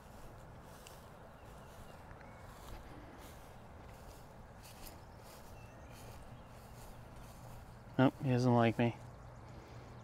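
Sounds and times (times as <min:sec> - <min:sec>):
soft rustles: 0:00.0 - 0:08.0.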